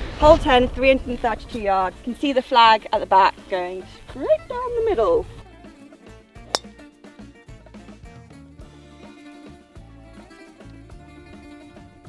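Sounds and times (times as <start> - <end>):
golf club striking ball: 6.5 - 6.8.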